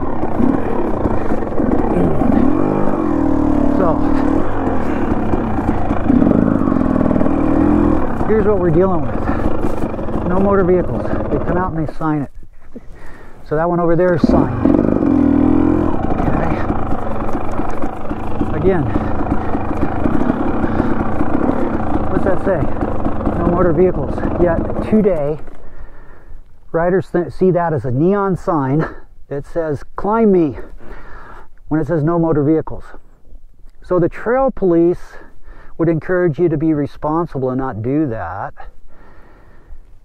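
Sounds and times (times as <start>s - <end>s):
dirt bike engine running: 0.0s - 29.0s.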